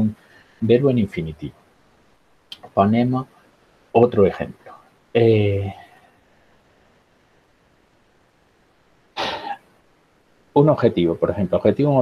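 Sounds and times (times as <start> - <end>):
man coughing: 9.2 - 9.6.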